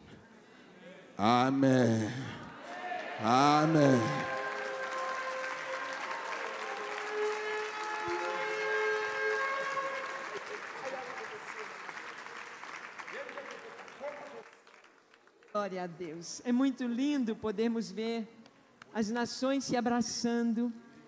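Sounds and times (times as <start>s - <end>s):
voices calling out: 1.2s - 11.5s
congregation applauding: 2.6s - 15.7s.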